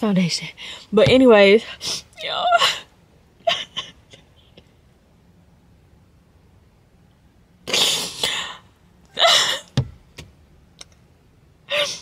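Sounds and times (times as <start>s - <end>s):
woman sobbing: 2.2s - 4.4s, 7.7s - 9.8s, 11.7s - 12.0s.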